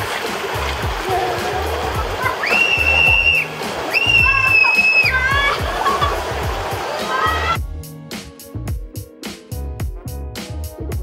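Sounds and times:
water rushing under raft: 0.0 - 7.6
background music with steady beat: 0.0 - 11.0
people screaming: 2.2 - 6.2, 7.0 - 7.6.

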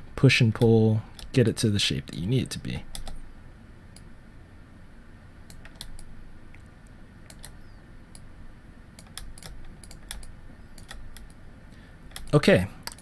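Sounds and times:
low steady hum: 0.0 - 13.0
keyboard and mouse clicks: 2.9 - 3.2, 5.5 - 8.3, 9.0 - 11.4, 12.1 - 13.0.

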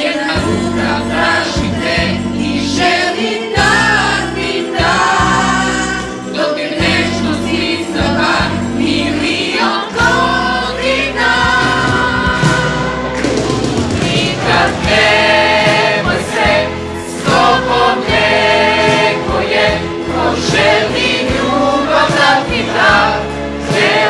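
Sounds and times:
choir singing: 0.0 - 24.0
sustained instrumental accompaniment: 0.0 - 24.0.

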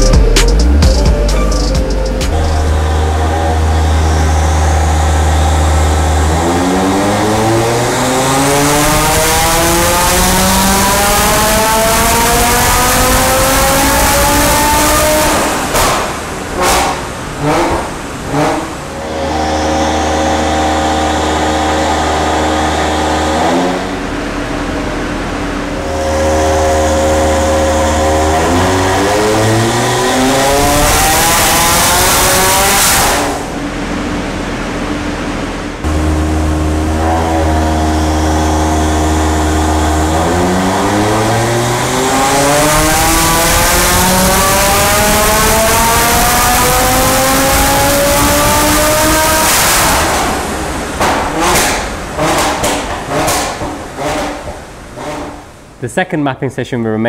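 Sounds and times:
turbocharged engine revving: 0.0 - 55.8
engine exhaust bangs: 0.0 - 55.9.

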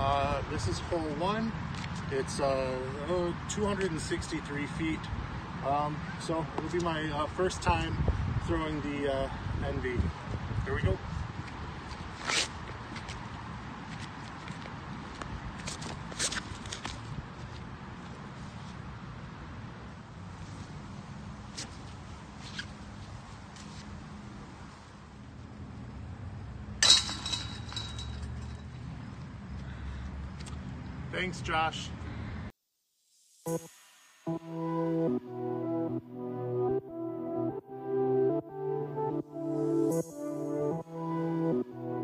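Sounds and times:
high metallic ring: 26.8 - 28.8.

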